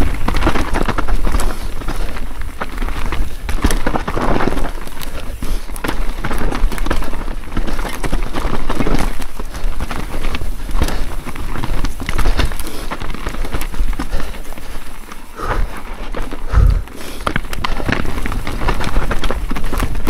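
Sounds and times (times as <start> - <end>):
bike knocks and rattles: 0.0 - 15.0, 16.0 - 20.0
bike tyres rumbling over stones: 0.0 - 20.0.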